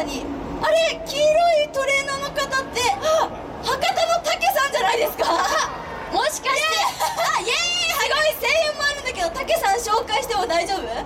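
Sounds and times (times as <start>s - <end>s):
high drawn-out exclamation: 0.0s - 9.3s.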